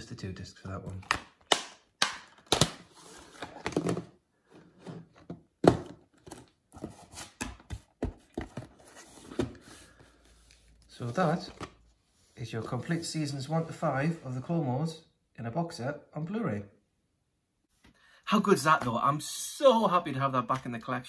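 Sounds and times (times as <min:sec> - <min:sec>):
plastic case snapping shut: 0:01.0 - 0:02.8
plastic cases clicking and knocking: 0:03.5 - 0:04.2.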